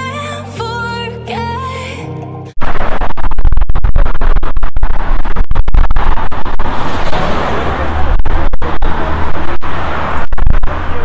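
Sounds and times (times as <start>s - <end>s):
wind buffeting microphone: 2.7s - 11.0s.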